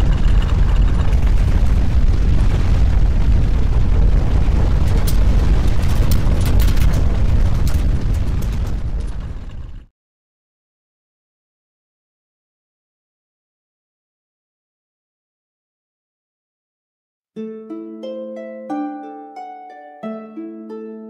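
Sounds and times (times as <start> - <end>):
deep rumbling noise: 0.0 - 9.9
sharp crackles and clicks: 0.0 - 9.9.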